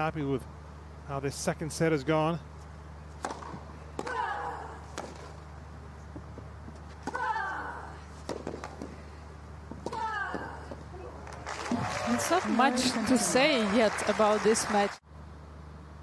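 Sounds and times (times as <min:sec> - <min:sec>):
tennis racket striking ball: 0:03.2 - 0:04.3, 0:04.9 - 0:05.4, 0:08.2 - 0:08.9.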